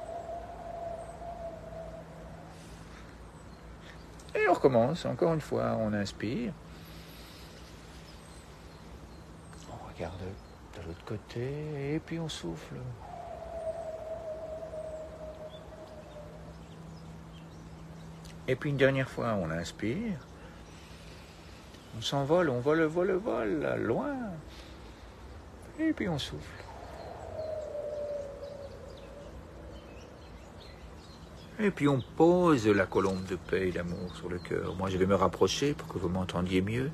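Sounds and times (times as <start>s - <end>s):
faint bird chirps: 0.0s - 36.9s
low steady hum: 0.0s - 36.9s
wind rumble on microphone: 12.8s - 18.1s, 25.4s - 32.2s.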